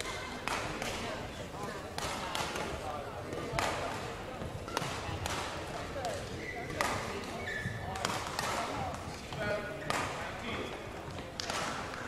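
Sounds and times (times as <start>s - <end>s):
shoe squeaks on court floor: 6.2s - 8.0s.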